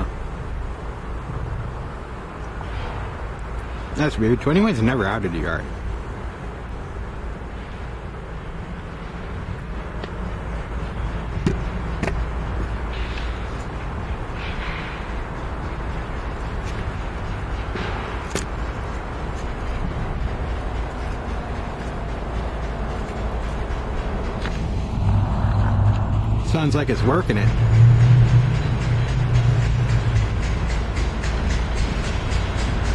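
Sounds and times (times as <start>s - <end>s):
diesel locomotive engines rumbling: 0.0s - 32.9s.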